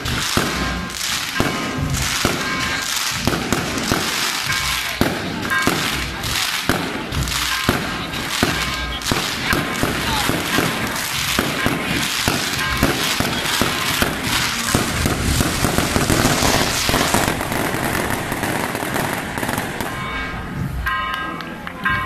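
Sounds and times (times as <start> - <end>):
firecrackers popping: 0.0 - 21.2
band music: 0.0 - 22.0.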